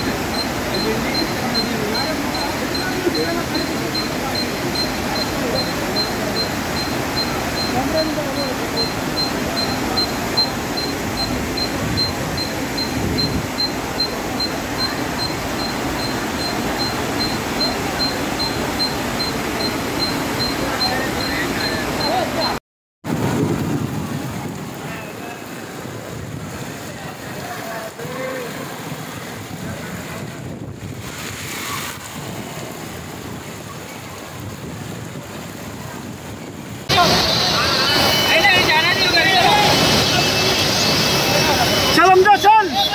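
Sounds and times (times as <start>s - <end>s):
faint high-pitched beeps: 0.0s - 22.6s, 36.9s - 42.9s
floodwater rushing along street: 0.0s - 42.9s
heavy rain: 0.0s - 42.9s
wind buffeting microphone: 23.1s - 24.9s, 25.6s - 27.4s, 28.5s - 36.9s.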